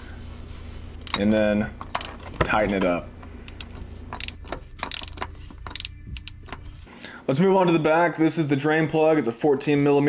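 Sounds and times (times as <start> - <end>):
ratchet clicking: 3.4 - 6.7.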